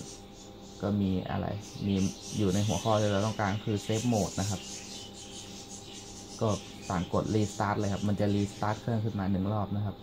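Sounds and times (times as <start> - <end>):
computer cooling fans whirring: 0.0 - 10.0.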